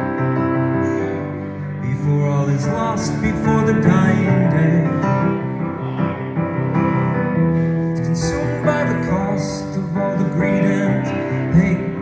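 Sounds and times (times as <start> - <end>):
piano chords with melody: 0.0 - 12.0.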